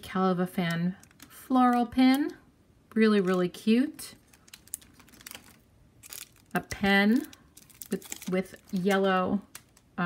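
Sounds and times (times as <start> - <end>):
plastic packaging clicks and taps: 4.3 - 9.9.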